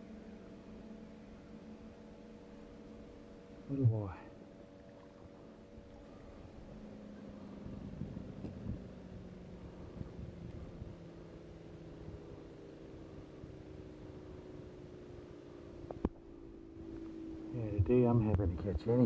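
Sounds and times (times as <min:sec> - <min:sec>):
faint engine drone: 0:00.0 - 0:19.0.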